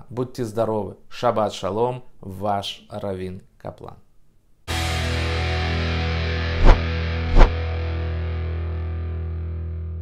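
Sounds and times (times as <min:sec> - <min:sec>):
distorted electric guitar chord: 0:04.7 - 0:10.0.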